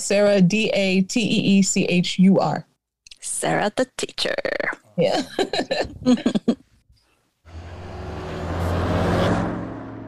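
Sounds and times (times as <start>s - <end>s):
vehicle passing by: 7.5s - 10.0s.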